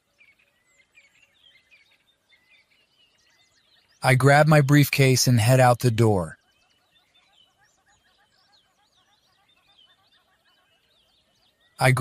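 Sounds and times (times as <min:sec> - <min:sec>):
faint birdsong chirps: 0:00.0 - 0:12.0
person speaking: 0:04.0 - 0:06.3, 0:11.8 - 0:12.0.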